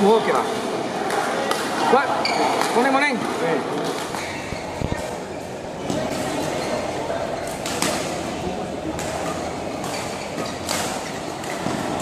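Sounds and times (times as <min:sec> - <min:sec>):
din and voices of busy hall: 0:00.0 - 0:12.0
racket smacking shuttlecock: 0:07.4 - 0:08.2, 0:08.9 - 0:12.0.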